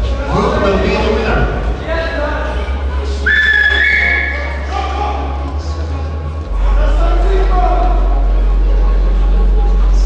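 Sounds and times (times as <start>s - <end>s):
crowd voices in hall: 0.0s - 10.0s
loud rising whistle: 3.2s - 4.5s.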